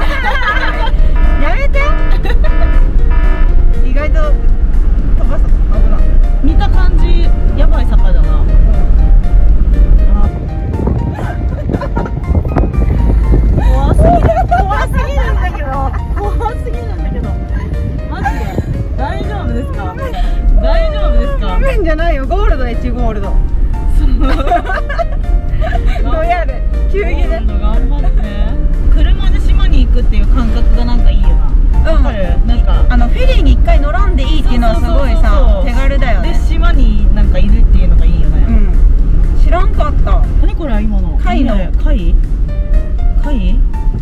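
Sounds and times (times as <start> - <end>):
background music: 0.0 - 44.0
car engine and tyres rumbling: 0.0 - 44.0.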